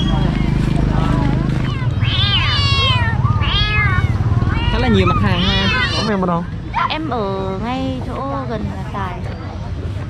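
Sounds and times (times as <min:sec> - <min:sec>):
kittens meowing: 0:01.3 - 0:06.9.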